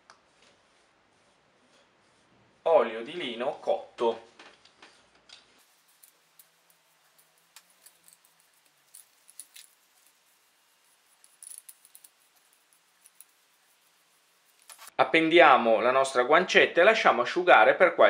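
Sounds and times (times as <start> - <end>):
light rubbing: 4.6 - 14.9.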